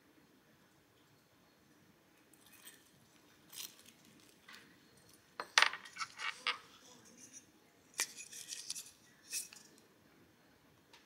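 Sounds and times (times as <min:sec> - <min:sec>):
light scraping and rustling: 0:05.6 - 0:09.8.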